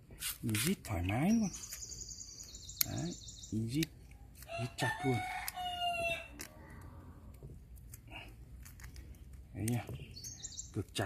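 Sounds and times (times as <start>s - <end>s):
rooster crowing: 4.5s - 6.4s.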